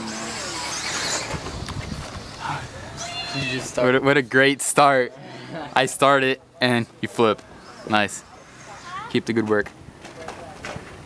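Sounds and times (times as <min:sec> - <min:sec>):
toy truck motor whirring: 0:00.0 - 0:03.8, 0:07.6 - 0:09.3.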